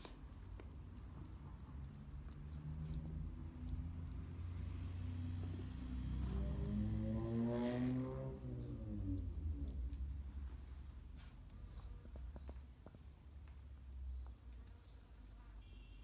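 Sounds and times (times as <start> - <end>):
aircraft rumbling overhead: 4.3 - 10.1.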